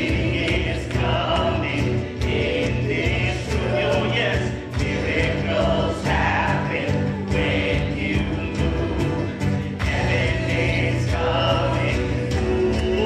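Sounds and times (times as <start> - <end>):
acoustic guitar: 0.0 - 13.0
bass guitar: 0.0 - 13.0
keyboard: 0.0 - 13.0
singers singing together: 0.0 - 13.0.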